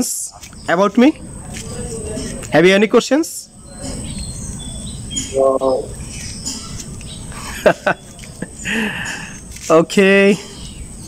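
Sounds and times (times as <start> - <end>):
birds chirping: 0.0 - 11.0
steady low hiss: 0.0 - 11.0.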